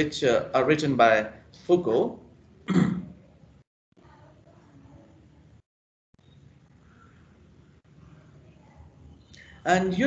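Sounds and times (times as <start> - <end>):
man speaking: 0.0 - 2.2, 9.6 - 10.0
man clearing throat: 2.7 - 3.2.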